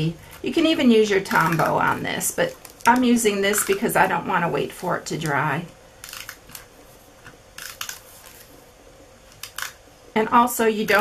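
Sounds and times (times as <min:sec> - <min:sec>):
paper rustling: 0:06.5 - 0:08.6
tape runner crackling clicks: 0:09.3 - 0:09.8.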